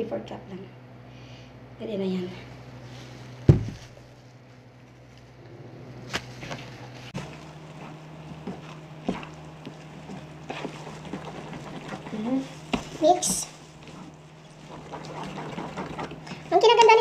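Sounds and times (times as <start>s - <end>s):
low hum: 0.0s - 17.0s
wooden spoon stirring batter: 7.2s - 17.0s.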